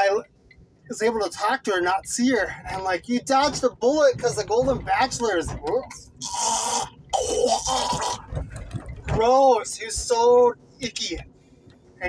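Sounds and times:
man gagging: 6.2 - 8.2.

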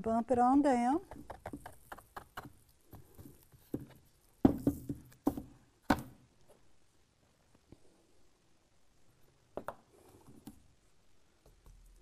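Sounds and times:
canvas knocking on tabletop: 3.7 - 6.2.

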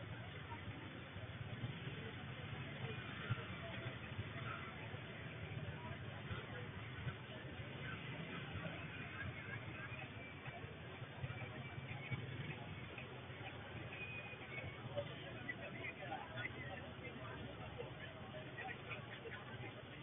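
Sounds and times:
indistinct crowd voices: 0.0 - 20.0
motorcycle and car engines rumbling: 0.0 - 20.0.

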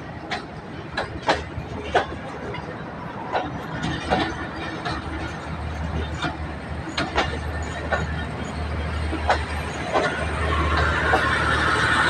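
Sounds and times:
train wheels clacking on rail joints: 0.0 - 12.0.

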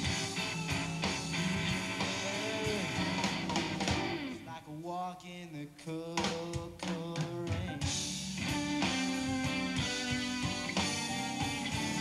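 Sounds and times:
blues band playing: 0.0 - 4.6, 6.2 - 12.0
electric guitar: 0.0 - 4.6, 7.5 - 12.0.

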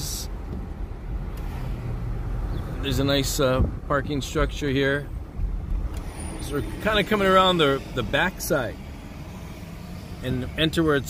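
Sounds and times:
car engine and road rumble: 0.0 - 11.0
low hum: 5.1 - 11.0.

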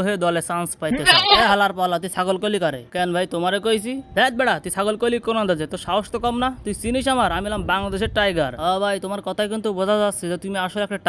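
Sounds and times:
man speaking: 0.0 - 11.0
short bleat: 0.9 - 1.6.

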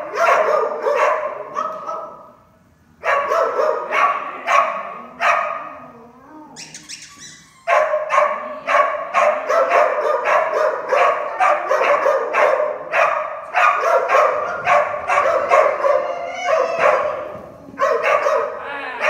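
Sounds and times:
dog barking: 0.0 - 2.4, 3.0 - 5.8, 7.7 - 18.6.

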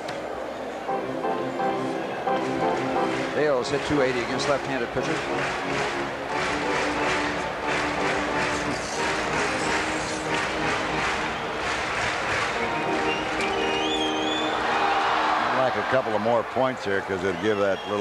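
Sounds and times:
organ music: 0.8 - 16.0.

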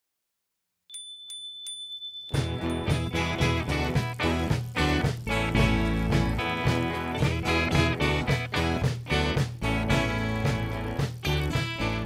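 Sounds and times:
bicycle bell ringing: 0.9 - 3.9.

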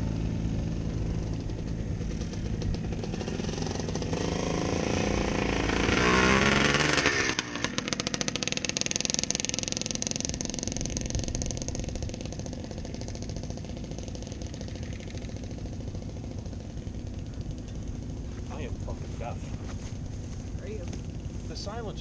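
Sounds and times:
dirt bike engine: 0.0 - 22.0
rapid exhaust pulses: 0.0 - 22.0.

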